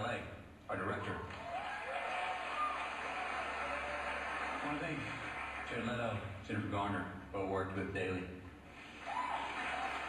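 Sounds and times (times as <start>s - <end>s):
recorded applause over loudspeakers: 1.3s - 6.3s, 8.7s - 10.0s.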